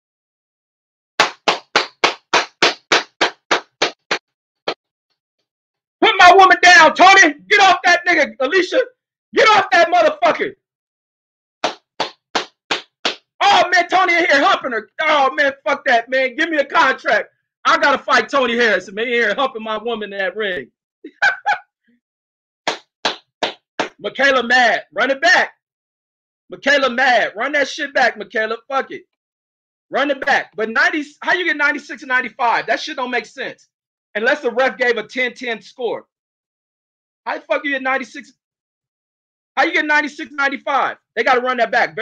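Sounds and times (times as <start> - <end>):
person clapping hands: 1.2 - 4.8, 11.6 - 13.3, 22.7 - 24.0.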